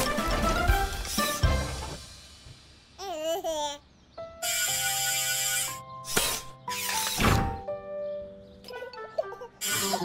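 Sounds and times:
cartoon background music: 0:00.0 - 0:02.0, 0:04.2 - 0:10.0.

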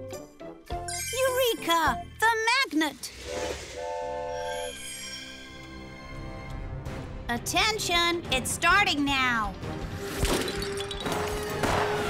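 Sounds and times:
train toot and horn blast: 0:03.2 - 0:04.6.

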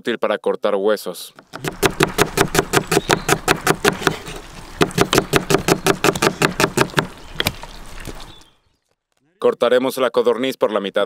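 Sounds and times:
knife chopping on wooden board: 0:01.4 - 0:08.2.

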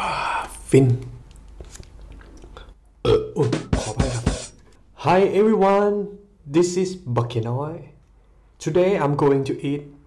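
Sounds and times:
man burping loudly: 0:03.0 - 0:04.6.

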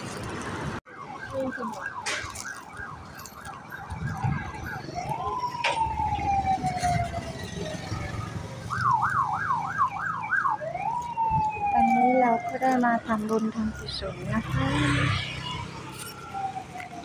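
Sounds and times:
street background noise: 0:00.0 - 0:17.0
emergency vehicle siren: 0:00.8 - 0:17.0.

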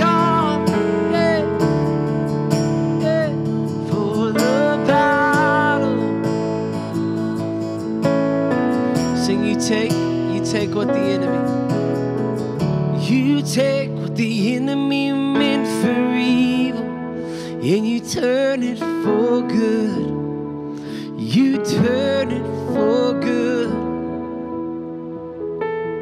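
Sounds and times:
man singing: 0:00.0 - 0:07.6, 0:08.9 - 0:12.0, 0:12.9 - 0:24.3
strummed acoustic guitar: 0:00.0 - 0:23.7
held keyboard chords: 0:00.0 - 0:26.0.

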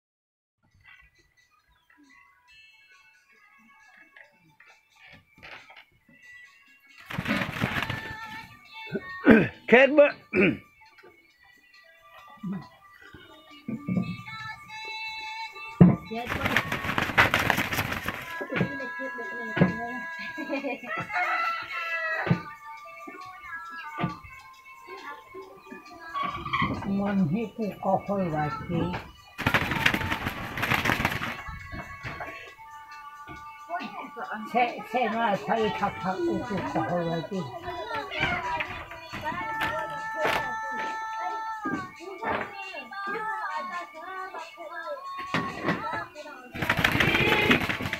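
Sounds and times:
faint background music: 0:00.6 - 0:47.9
rooster wings flapping: 0:07.0 - 0:08.5, 0:16.2 - 0:18.4, 0:29.4 - 0:32.2, 0:46.6 - 0:47.9.

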